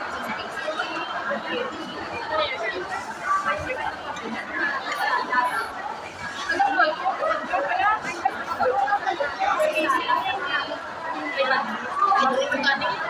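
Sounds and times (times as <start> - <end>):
people talking over one another: 0.0 - 13.0.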